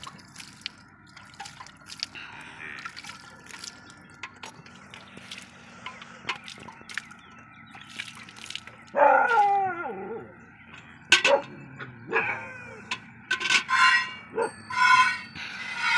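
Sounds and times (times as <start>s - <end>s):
milk squirting into steel bucket: 0.0s - 2.2s, 2.8s - 5.5s, 7.8s - 8.7s.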